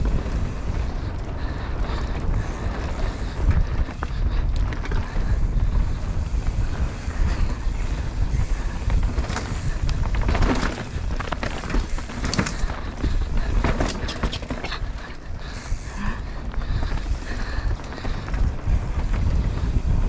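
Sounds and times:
bike rattling and knocking: 0.0s - 20.0s
bike tyres rolling over dirt: 0.0s - 20.0s
wind buffeting microphone: 0.0s - 20.0s.

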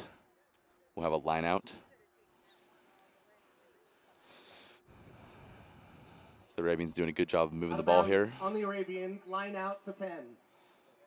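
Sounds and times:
distant indistinct voices: 0.0s - 6.8s.

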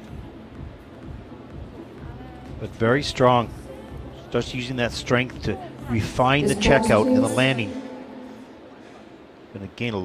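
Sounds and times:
indoor ice arena background noise: 0.0s - 10.0s.

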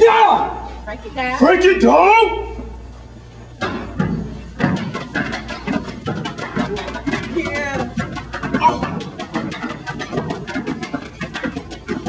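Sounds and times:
people shouting: 0.0s - 0.7s, 8.5s - 9.0s
foot stomps: 3.6s - 12.0s.

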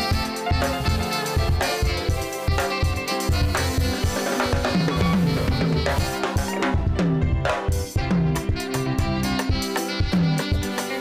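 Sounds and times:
alto saxophone melody: 0.0s - 11.0s
live band playing: 0.0s - 11.0s
steady drum beat: 0.0s - 11.0s.

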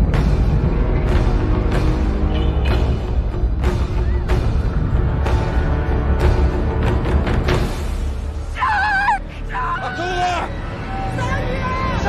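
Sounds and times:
tense film score: 0.0s - 12.0s.

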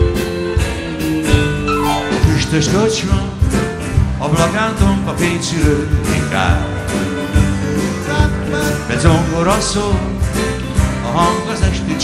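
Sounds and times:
guitars and keyboard playing: 0.0s - 12.0s
person singing: 1.8s - 3.6s, 8.0s - 10.2s.

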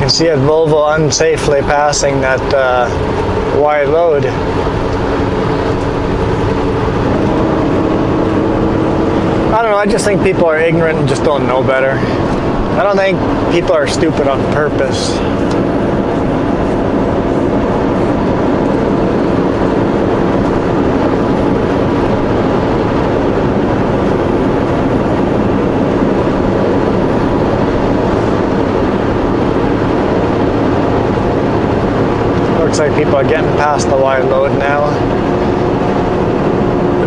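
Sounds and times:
road noise: 0.0s - 37.0s
truck diesel engine drone: 0.0s - 37.0s.

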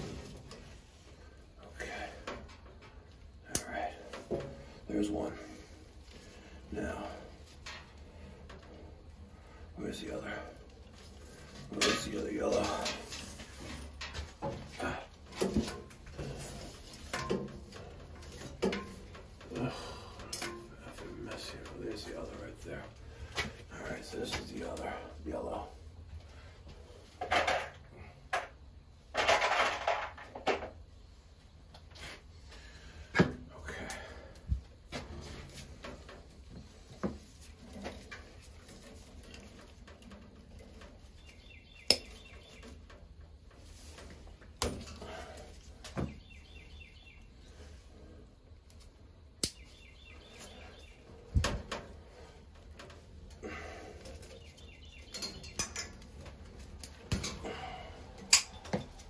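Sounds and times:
hand tools clicking and snipping wire: 15.3s - 20.8s, 48.7s - 49.7s, 52.8s - 59.0s.

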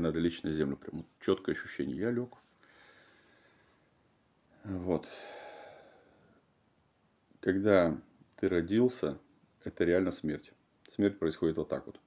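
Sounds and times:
man sighing: 5.1s - 6.1s.

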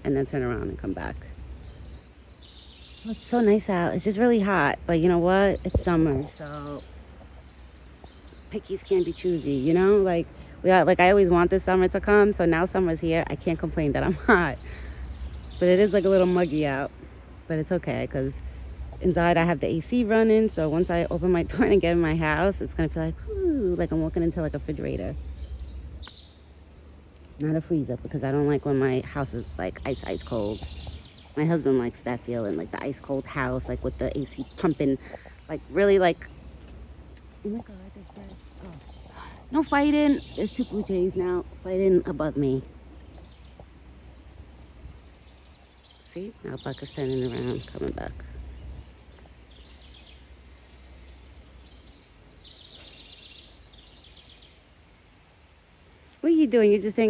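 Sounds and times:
low microphone rumble: 0.0s - 57.0s
low steady hum: 0.0s - 57.0s
soft background hiss: 0.0s - 57.0s
songbirds chirping: 0.0s - 57.0s.

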